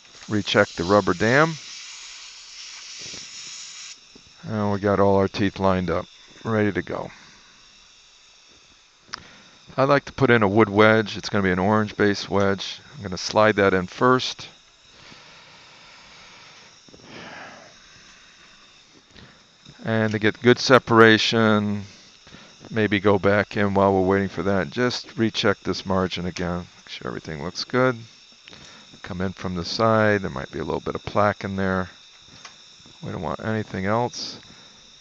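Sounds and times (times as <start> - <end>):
dental air syringe hissing: 0.0 - 35.0
breath through the nose: 9.1 - 9.7, 14.8 - 19.6, 21.8 - 22.7, 28.4 - 29.0.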